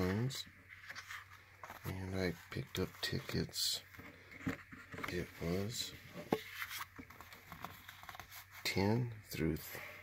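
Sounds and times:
cardstock tickets rustling: 0.0 - 9.0.

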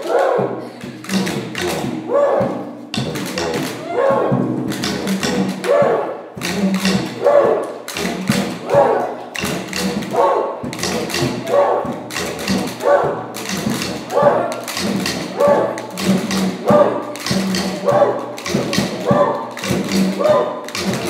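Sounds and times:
regular drum beat: 0.0 - 21.0.

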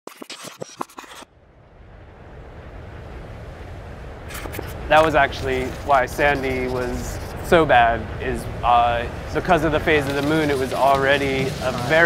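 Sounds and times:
digital glitch clicks and crackles: 0.1 - 1.3, 4.3 - 6.8, 9.9 - 12.0
low rumbling noise: 1.2 - 12.0.

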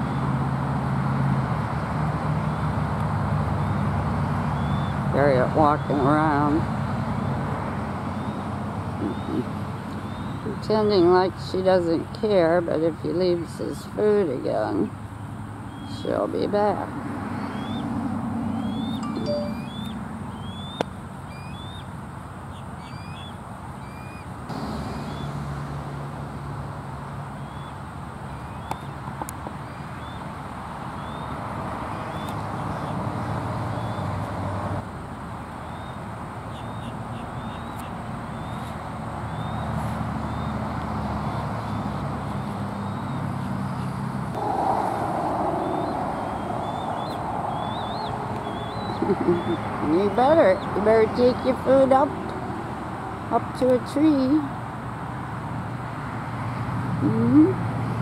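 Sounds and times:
birds chirping: 8.1 - 12.4, 14.5 - 21.9, 35.6 - 52.4
steady low rumble: 44.3 - 50.2.

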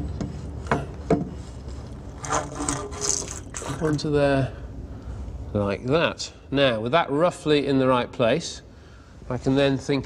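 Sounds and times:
rubbing and scraping on metal: 1.5 - 4.0.

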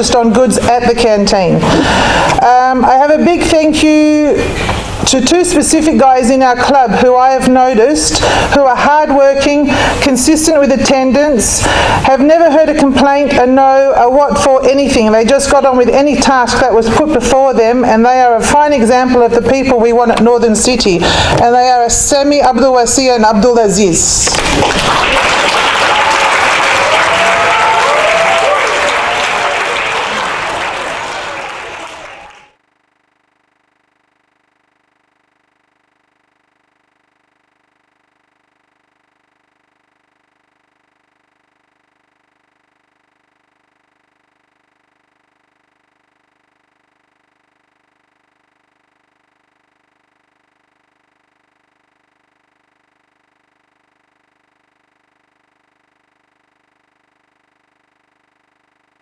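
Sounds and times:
audience applauding: 24.4 - 32.6.

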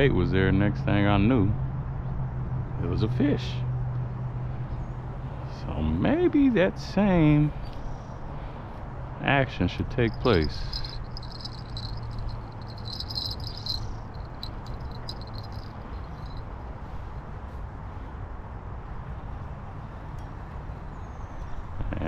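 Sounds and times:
low outdoor rumble: 9.5 - 17.2
insect trilling: 10.1 - 16.4.

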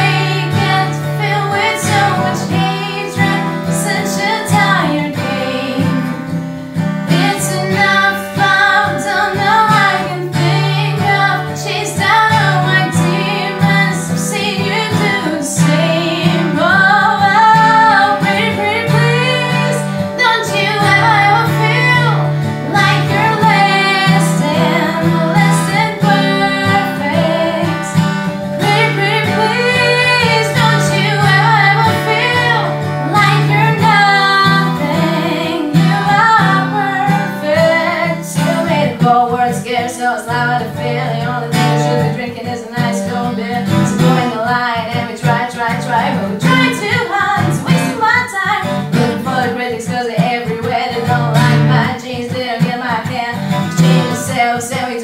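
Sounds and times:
strummed acoustic guitar: 0.0 - 55.0
woman singing pop song: 0.0 - 55.0.

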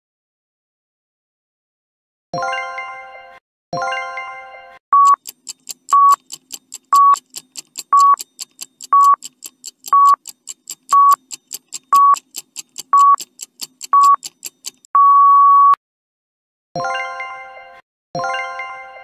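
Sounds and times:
short electronic beeps: 4.9 - 5.2, 5.9 - 6.2, 6.9 - 7.2, 7.9 - 8.2, 8.9 - 9.2, 9.9 - 10.2, 10.9 - 11.2, 11.9 - 12.2, 12.9 - 13.2, 13.9 - 14.2, 14.9 - 15.8
fast timer ticking: 5.0 - 14.9.

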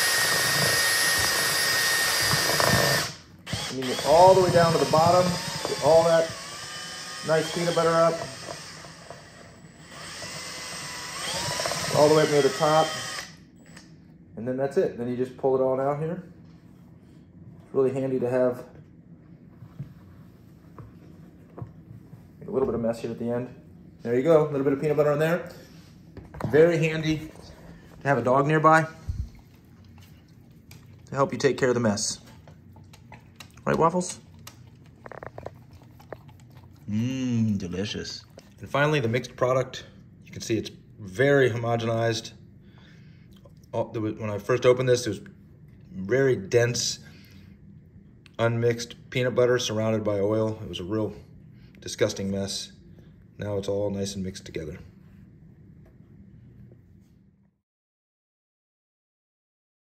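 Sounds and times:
beater stirring peanut butter: 0.0 - 9.2
cordless drill motor whining: 0.0 - 13.9
dog licking and chewing: 29.3 - 31.4, 32.2 - 38.7.

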